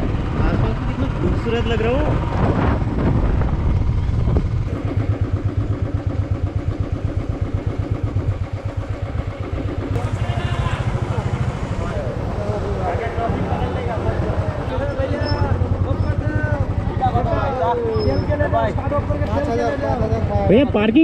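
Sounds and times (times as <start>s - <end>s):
wind rumbling: 0.0s - 8.6s
motorcycle engine: 0.0s - 21.0s.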